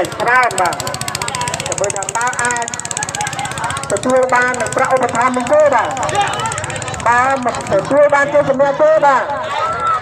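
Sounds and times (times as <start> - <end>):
fast-pulsing motor hum: 0.0 - 8.6
people talking loudly in a crowd: 0.0 - 10.0.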